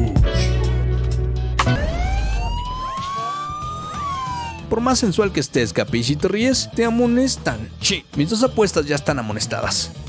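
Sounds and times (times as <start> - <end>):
electronic siren wail: 1.6 - 4.7.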